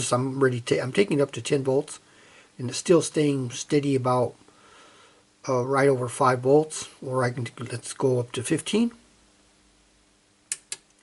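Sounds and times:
faint low hum: 0:00.0 - 0:11.0
short sharp clicks: 0:10.5 - 0:10.9.

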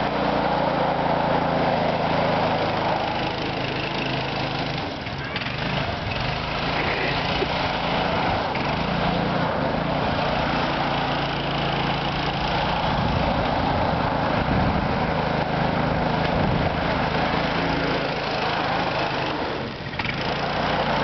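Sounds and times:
go-kart engine running: 0:00.0 - 0:21.0.

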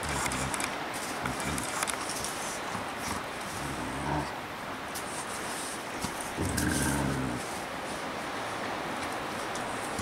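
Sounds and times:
dog growling: 0:03.1 - 0:04.4, 0:06.4 - 0:07.6.

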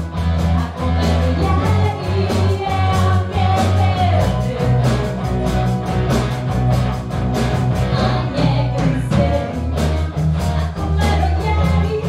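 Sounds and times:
bass: 0:00.0 - 0:12.0
drum kit: 0:00.0 - 0:12.0
electric guitar: 0:00.0 - 0:12.0.

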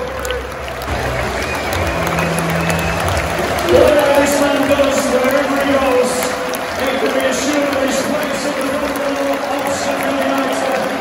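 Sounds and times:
crowd cheering: 0:00.0 - 0:11.0
stadium crowd clapping: 0:00.0 - 0:11.0.

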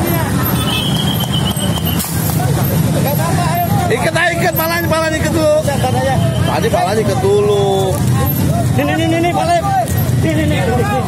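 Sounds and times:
men talking over one another: 0:00.0 - 0:11.0.

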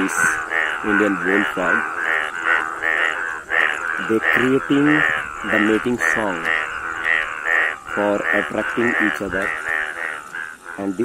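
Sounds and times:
bullfrogs calling: 0:00.0 - 0:11.0.

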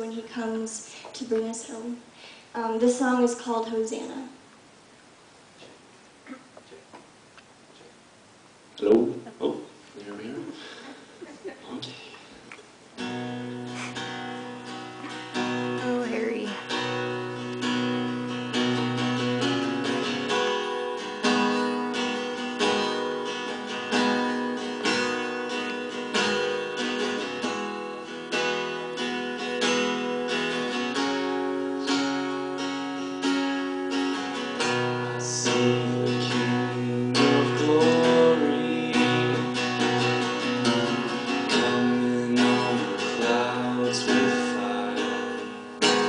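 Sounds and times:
acoustic guitar strumming chords: 0:13.0 - 0:46.0.

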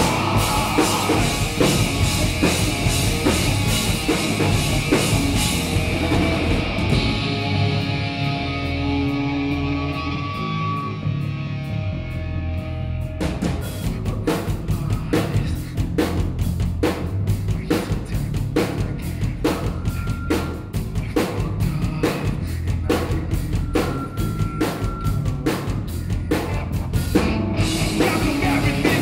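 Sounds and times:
rapid drum kit hits: 0:00.0 - 0:07.7, 0:24.6 - 0:29.0
low bass guitar notes: 0:00.0 - 0:17.5, 0:18.4 - 0:29.0
rock band playing: 0:00.0 - 0:29.0.

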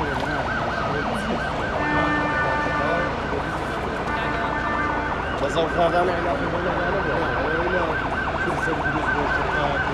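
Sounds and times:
emergency vehicle sirens yelping: 0:00.0 - 0:09.9
murmur of large crowd: 0:00.0 - 0:09.9.

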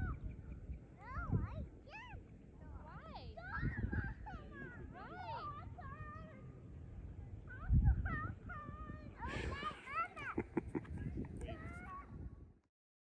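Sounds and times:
wind gusts on microphone: 0:00.0 - 0:12.6.

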